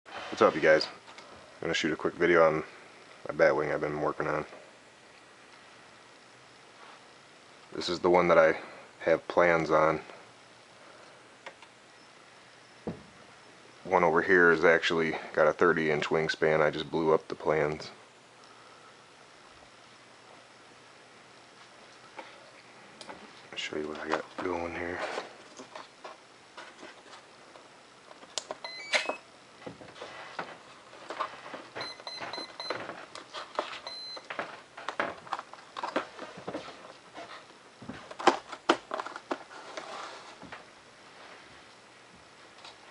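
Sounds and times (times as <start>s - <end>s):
wires and connectors rustling: 21.6s - 28.8s, 29.6s - 42.9s.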